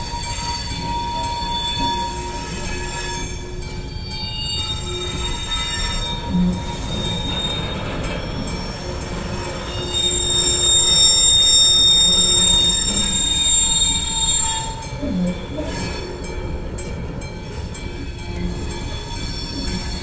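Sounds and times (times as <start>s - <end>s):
high wheel squeal: 0.0s - 20.0s
train wheels rumbling on rails: 0.0s - 20.0s.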